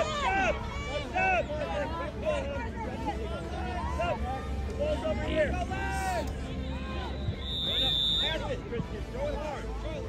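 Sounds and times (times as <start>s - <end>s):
voices talking and calling out: 0.0s - 10.0s
high whistle note: 7.1s - 8.4s.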